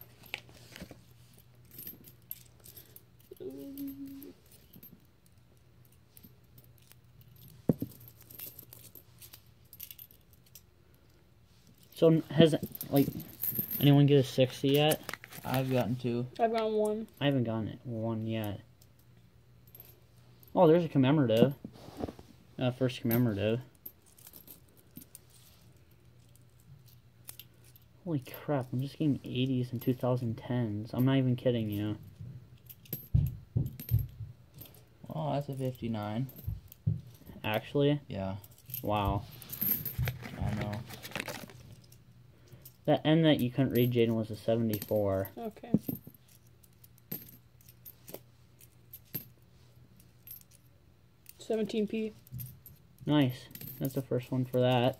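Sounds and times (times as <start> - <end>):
coins clinking: 1.6 - 5.4.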